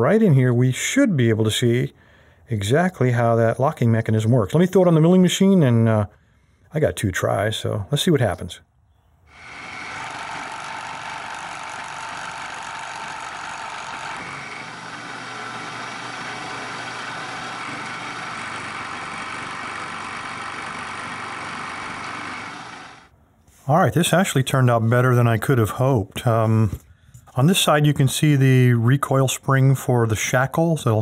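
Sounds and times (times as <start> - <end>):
milling machine cutting metal: 9.3 - 23.1.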